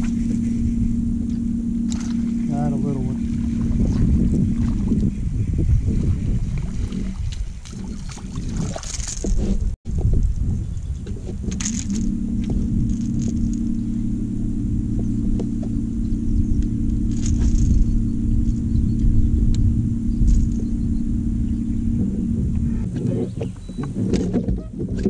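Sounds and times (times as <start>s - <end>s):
electric boat motor humming: 0.0s - 7.4s, 10.9s - 24.9s
wind and water rumble on microphone: 0.0s - 25.0s.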